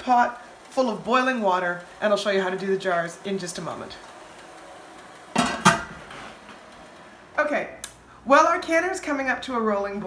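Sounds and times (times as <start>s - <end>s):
metal lid clanking on pot: 5.4s - 6.0s.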